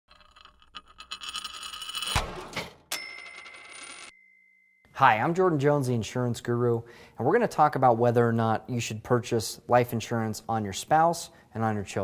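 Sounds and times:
high ringing chime: 2.9 - 5.0.

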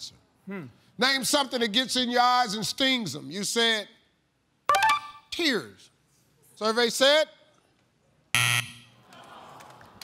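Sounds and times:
game show buzzer: 8.4 - 9.0.

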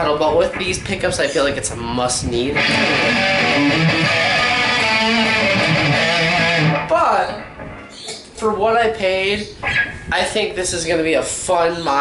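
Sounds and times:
electric guitar chords: 2.5 - 8.4.

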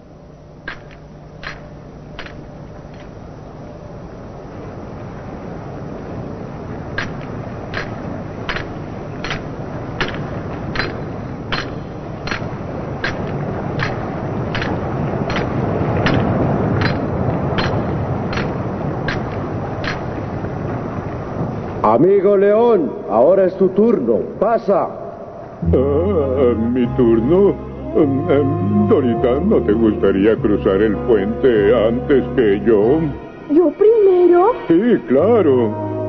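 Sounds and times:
low rumble: 25.6 - 34.0.

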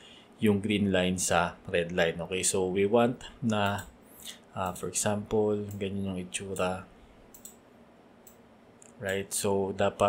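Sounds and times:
faint computer mouse clicks: 7.3 - 7.6, 8.2 - 9.2.

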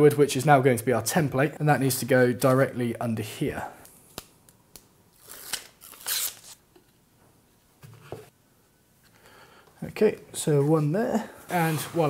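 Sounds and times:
backing paper ripping off tape: 5.1 - 6.6.

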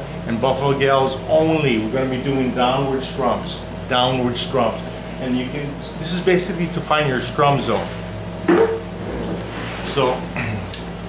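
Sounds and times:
person grunting: 10.4 - 10.8.

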